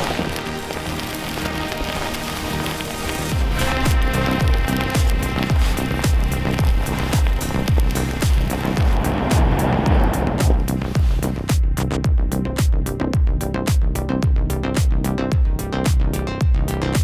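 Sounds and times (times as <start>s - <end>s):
rising wash of noise: 2.6s - 11.5s.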